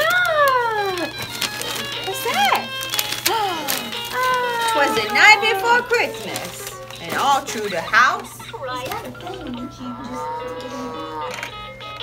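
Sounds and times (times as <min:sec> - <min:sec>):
toy playing recorded cow moo: 0:09.6 - 0:12.0.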